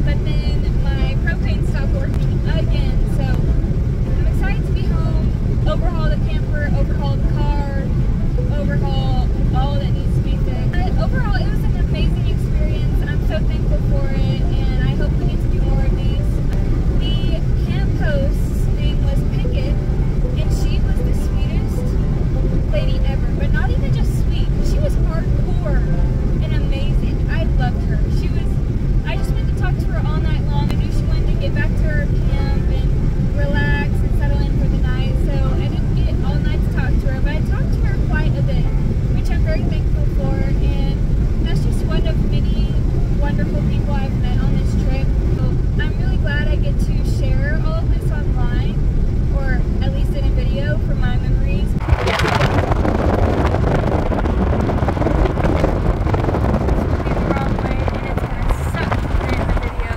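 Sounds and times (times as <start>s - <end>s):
car cabin road rumble: 0.0s - 59.9s
wind buffeting microphone: 0.0s - 59.9s.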